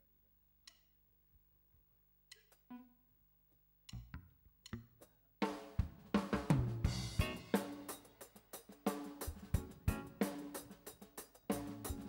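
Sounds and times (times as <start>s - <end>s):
bass: 3.9s - 5.2s, 5.8s - 8.0s, 9.2s - 12.0s
drum kit with cymbal and snare: 5.0s - 12.0s
electric keyboard: 6.9s - 7.7s, 9.5s - 10.7s, 11.5s - 12.0s.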